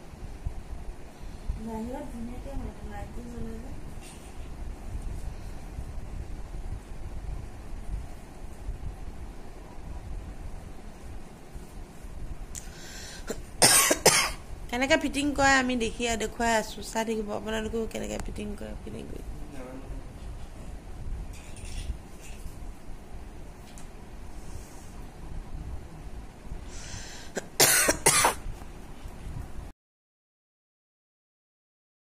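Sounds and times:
person coughing: 0:13.3 - 0:14.4, 0:27.4 - 0:28.4.

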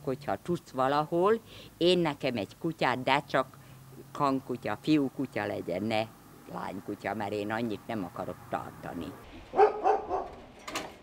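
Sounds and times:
dog barking: 0:09.5 - 0:10.4.

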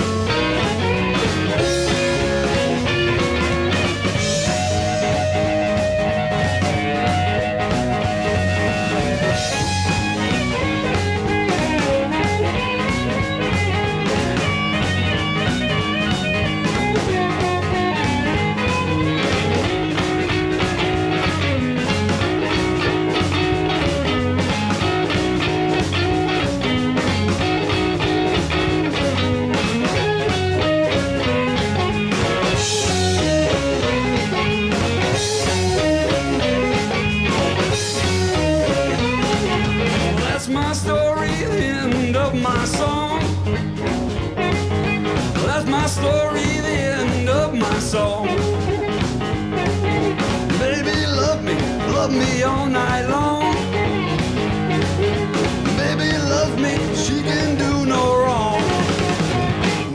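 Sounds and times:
harmonica solo: 0:00.0 - 0:22.2, 0:29.2 - 0:40.2
bass guitar: 0:00.0 - 0:59.9
drum kit beat: 0:00.0 - 0:59.9
electric guitar: 0:00.0 - 0:59.9.

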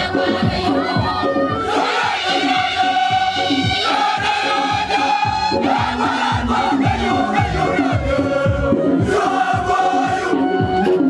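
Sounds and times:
choir singing: 0:00.0 - 0:11.0
steady low beat: 0:00.0 - 0:11.0.

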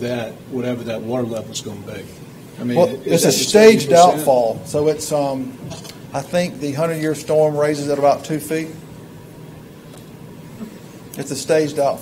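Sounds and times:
faint background hiss and hum: 0:00.0 - 0:12.0.

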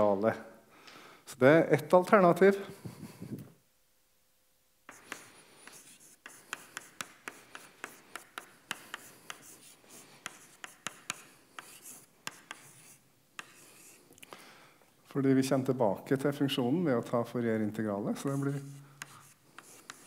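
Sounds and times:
chalk scratching on blackboard: 0:04.9 - 0:14.0, 0:18.2 - 0:20.0
chalk tapping on board: 0:04.9 - 0:14.0, 0:18.2 - 0:20.0.

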